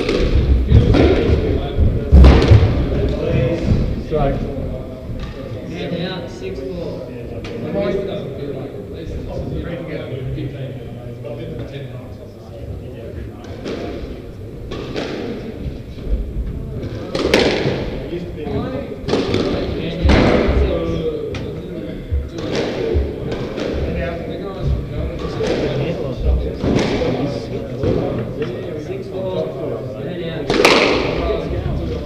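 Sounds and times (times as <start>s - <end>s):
squash ball hits echoing: 0.0s - 4.0s, 13.4s - 15.7s, 16.8s - 20.9s, 22.2s - 28.4s, 30.4s - 31.6s.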